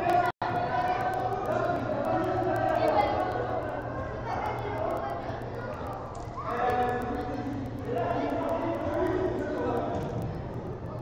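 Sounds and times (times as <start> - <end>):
distant people's voices: 0.0 - 11.0.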